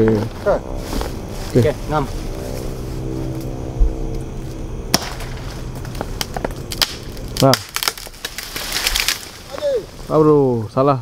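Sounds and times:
leaves rustling: 0.0 - 10.7
low hum: 0.0 - 11.0
tree branch cracking: 4.9 - 10.1.

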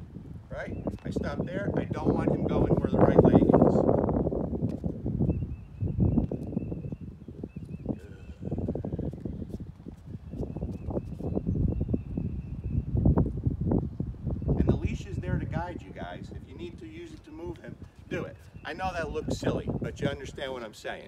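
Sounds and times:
wind buffeting microphone: 0.0 - 21.0
footsteps on concrete: 4.6 - 5.0, 7.9 - 11.4.

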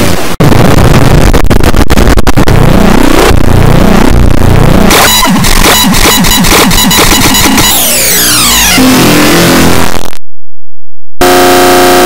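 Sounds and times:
distorted noise with pitch sweeps: 0.0 - 10.2
stuttering glitchy texture: 0.0 - 10.2.

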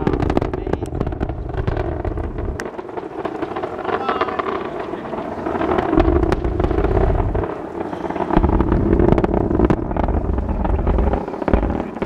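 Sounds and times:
distant rocket engine rumble: 0.0 - 12.0
wind buffeting microphone: 0.0 - 12.0.

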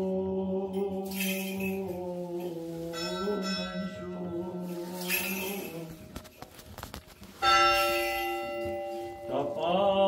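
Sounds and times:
church bell ringing: 2.8 - 5.9, 7.4 - 9.9.

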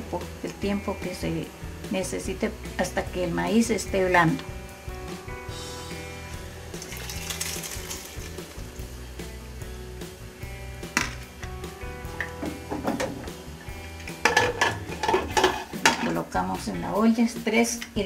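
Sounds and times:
background music: 0.0 - 18.0
corn kernels poured into pot: 6.3 - 8.9
pressure cooker lid clanking: 14.2 - 16.1.

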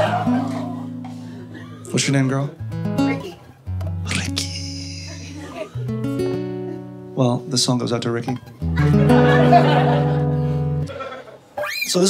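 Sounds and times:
strummed guitar chord: 0.0 - 10.9.

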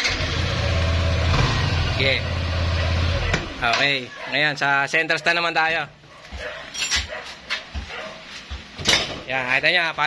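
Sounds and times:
scooter engine idling: 0.0 - 3.6.

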